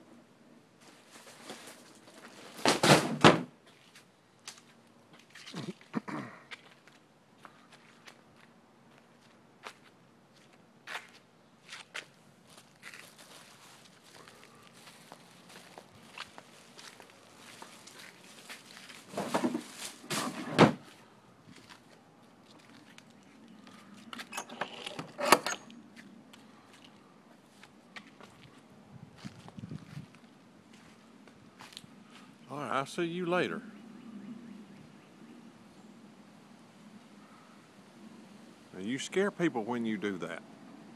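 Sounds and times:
plastic wheeled trash bin handled: 0.8s - 3.5s, 19.0s - 20.9s
footsteps: 3.6s - 24.4s, 25.9s - 32.3s.

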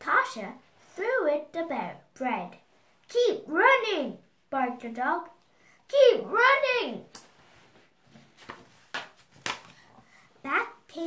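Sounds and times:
paper page turning: 8.2s - 9.9s.

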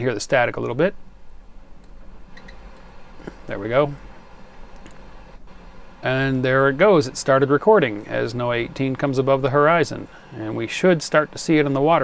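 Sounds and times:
radio static hiss: 2.9s - 12.0s.

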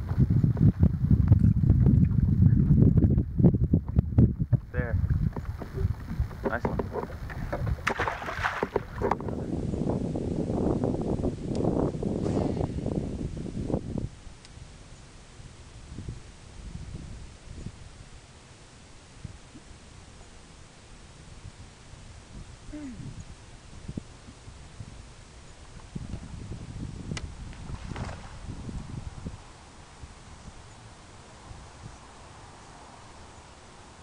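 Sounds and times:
wind noise on microphone: 0.0s - 34.0s
water against boat hull: 3.8s - 9.5s.

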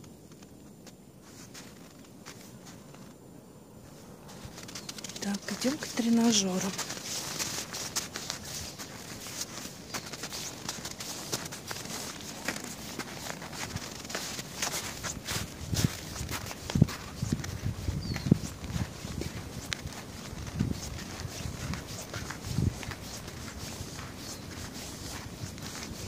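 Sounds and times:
footsteps in snow: 0.2s - 3.2s, 3.8s - 26.0s.

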